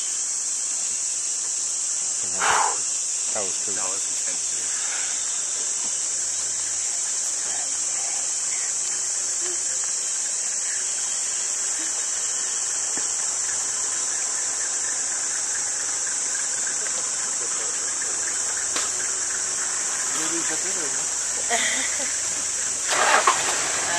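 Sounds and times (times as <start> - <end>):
insect chorus drone: 0.0 - 23.9.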